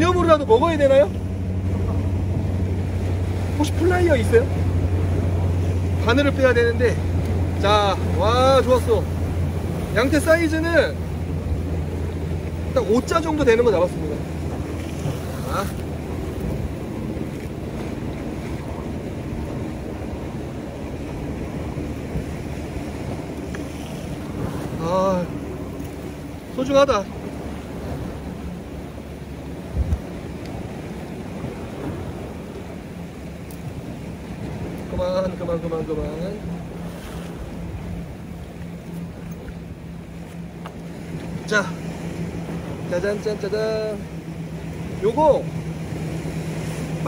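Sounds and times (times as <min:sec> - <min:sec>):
distant boat engine droning: 0:00.0 - 0:47.0
surf washing against rocks: 0:00.0 - 0:47.0
wind on microphone: 0:07.0 - 0:39.8.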